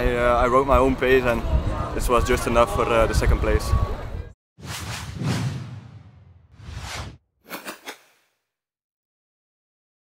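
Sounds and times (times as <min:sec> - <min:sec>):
whooshes: 0:04.6 - 0:08.3.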